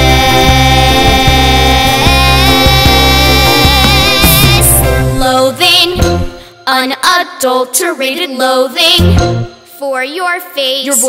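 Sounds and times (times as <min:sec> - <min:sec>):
young voices singing: 0:00.0 - 0:06.0
musical theatre backing track: 0:00.0 - 0:06.5.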